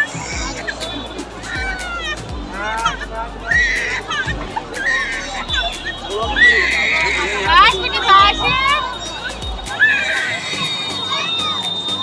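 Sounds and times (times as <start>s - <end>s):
baby crying: 2.8s - 5.4s.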